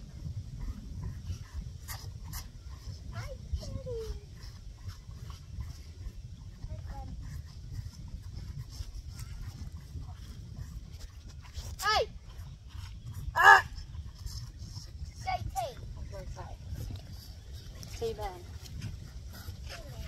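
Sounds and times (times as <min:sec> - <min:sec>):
calves sucking at feeding bottles: 0:00.0 - 0:20.0
wind rumbling on microphone: 0:00.0 - 0:20.0.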